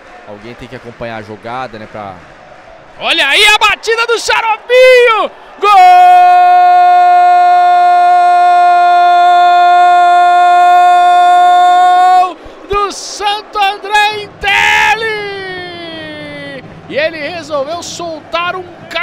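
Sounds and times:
sportscaster shouting goal call: 3.0 - 16.6.

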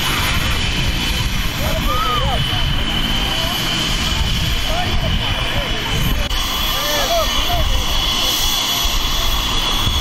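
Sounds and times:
helicopter turbine whine and rumble: 0.0 - 10.0.

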